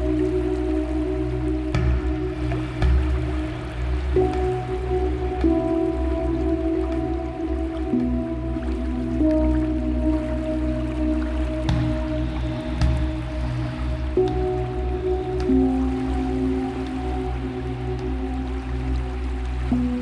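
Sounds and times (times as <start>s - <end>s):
deep low drone: 0.0s - 20.0s
sustained held chords: 0.0s - 20.0s.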